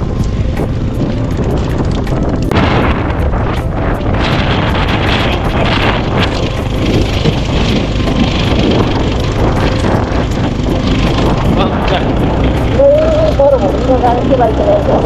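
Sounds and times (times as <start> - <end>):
motorcycle engine and road noise: 0.0 - 15.0
rattles and knocks from bumps: 0.3 - 15.0.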